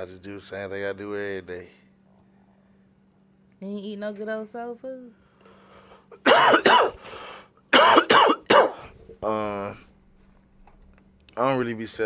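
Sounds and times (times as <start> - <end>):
man coughing: 6.1 - 7.0, 7.7 - 9.0.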